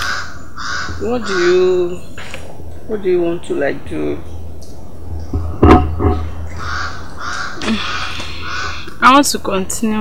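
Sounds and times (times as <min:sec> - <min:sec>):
bird calling: 0:00.0 - 0:09.2.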